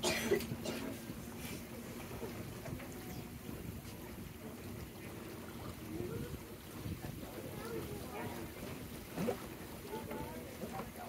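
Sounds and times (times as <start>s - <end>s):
boat and water rumble: 0.0s - 11.0s
passengers talking: 0.0s - 11.0s.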